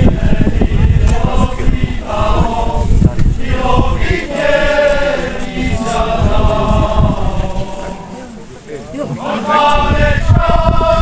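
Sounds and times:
low microphone rumble: 0.0 - 8.5, 9.6 - 11.0
group singing folk song: 0.0 - 11.0.

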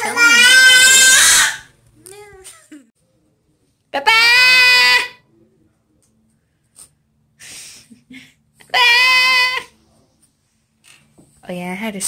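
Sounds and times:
baby squealing: 0.0 - 1.7.

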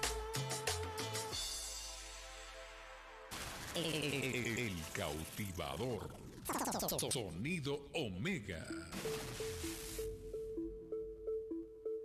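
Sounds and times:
synth riff: 8.6 - 12.0.

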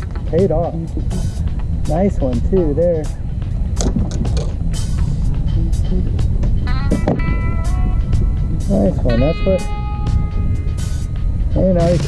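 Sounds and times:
background music: 0.0 - 12.0
wind buffeting microphone: 0.0 - 12.0
irregular knocks and clicks: 3.8 - 4.6
run of pitched notes: 5.6 - 12.0.

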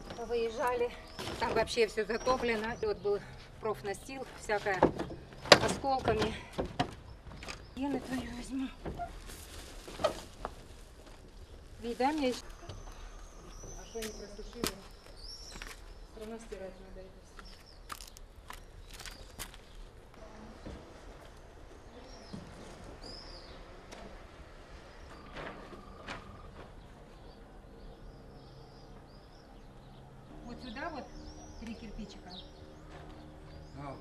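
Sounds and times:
plastic bag rustling and crinkling: 7.9 - 12.5, 17.9 - 19.9
plastic crackles: 8.2 - 12.4, 17.5 - 19.9
bird chirp: 12.2 - 19.9, 21.7 - 23.9, 24.9 - 34.0.

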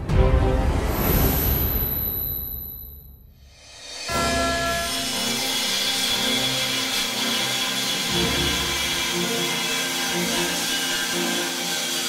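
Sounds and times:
angle grinder cutting metal: 3.7 - 12.0.

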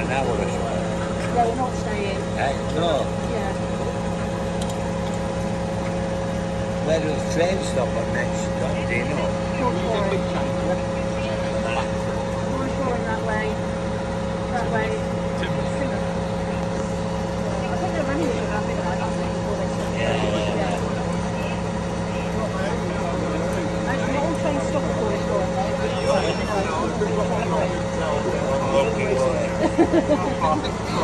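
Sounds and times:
crane diesel engine humming: 0.0 - 31.0
indistinct voices: 6.7 - 31.0.

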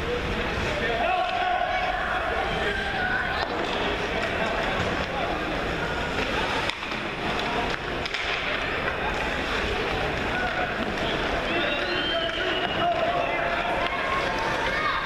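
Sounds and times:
stick hitting puck: 6.2 - 9.3.

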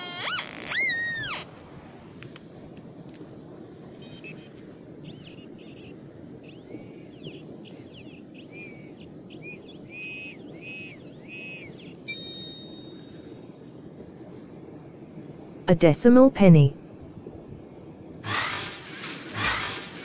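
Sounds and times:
metal detector warbling tones: 11.4 - 13.4.

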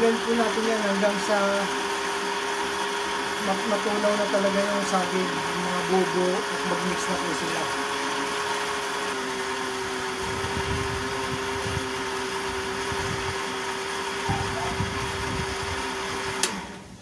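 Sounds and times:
blender running: 0.0 - 17.0
blender switch click: 16.4 - 16.6.

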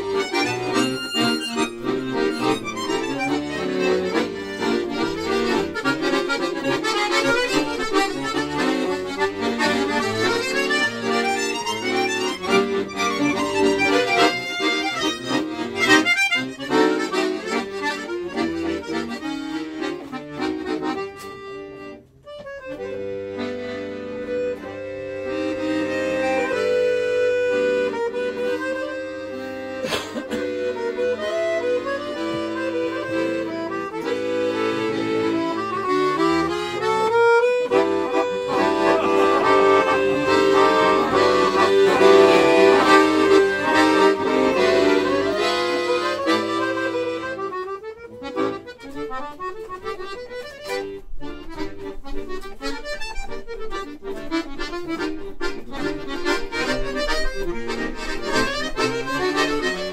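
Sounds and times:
accordion duet: 0.0 - 59.9.

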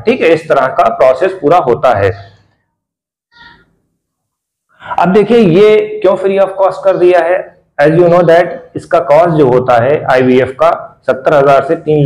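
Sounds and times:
marker squeaking on whiteboard: 3.3 - 3.8.

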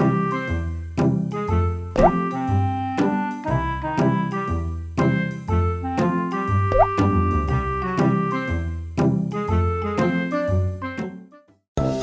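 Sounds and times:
upbeat children's music: 0.0 - 12.0
rising bloop sound effect: 6.7 - 7.4.

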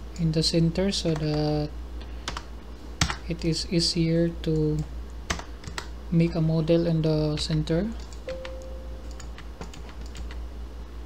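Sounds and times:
steady low hum: 0.0 - 11.0
keyboard keystrokes: 7.4 - 10.4.

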